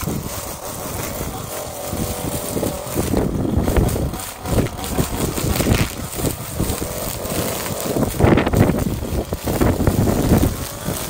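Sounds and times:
string trimmer engine running: 0.0s - 11.0s
wind gusting on microphone: 0.0s - 11.0s.

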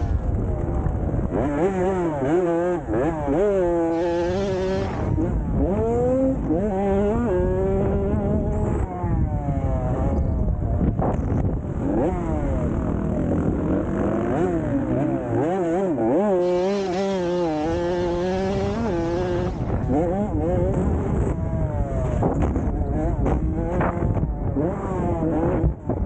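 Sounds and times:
dirt bike engine revving: 0.0s - 26.0s.

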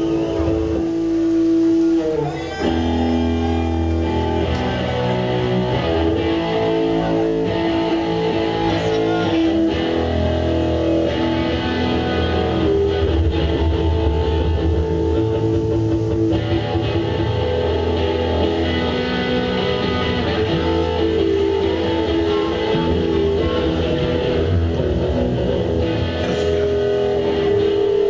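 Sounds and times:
bass guitar: 0.0s - 28.0s
electric guitar: 0.0s - 28.0s
live punk band playing: 0.0s - 28.0s.

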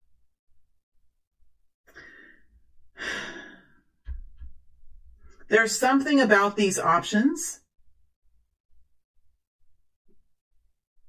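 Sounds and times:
person breathing in: 1.9s - 3.8s
person sighing: 3.0s - 3.8s.

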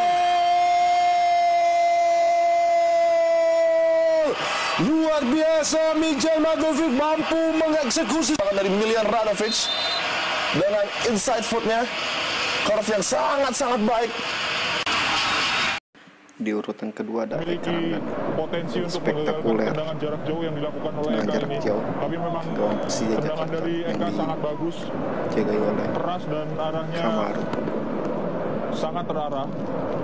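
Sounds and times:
stadium crowd roar: 0.0s - 15.8s, 17.4s - 30.0s.

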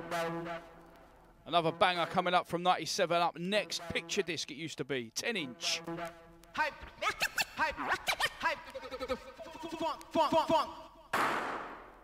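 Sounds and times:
vinyl record scratching: 6.6s - 10.8s.

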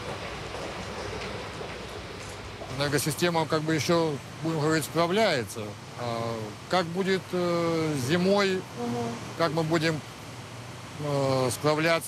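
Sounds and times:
machinery hum and hiss: 0.0s - 12.0s.

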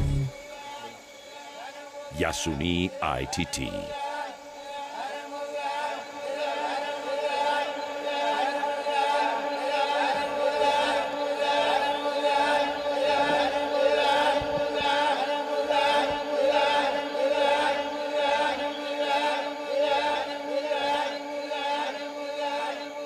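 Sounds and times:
steady drone: 0.0s - 0.3s
group chant-like singing: 0.0s - 23.0s.

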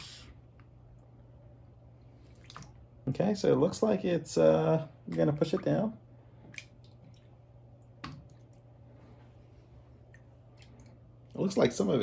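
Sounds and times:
low room hum: 0.0s - 12.0s
small water splashes and drips: 2.1s - 3.0s, 5.0s - 8.8s, 10.0s - 11.5s.

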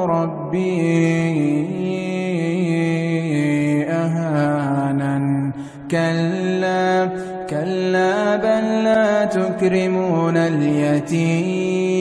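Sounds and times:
man reciting in melodic style: 0.0s - 12.0s.

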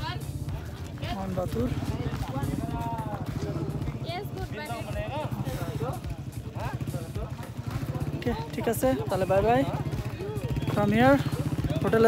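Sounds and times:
people talking: 0.0s - 12.0s
vehicle engine idling: 0.0s - 12.0s.

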